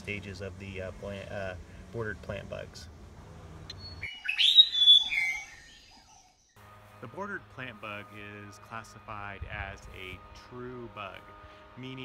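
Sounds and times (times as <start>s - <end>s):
bird-like chirps and whistles: 3.7s - 6.6s.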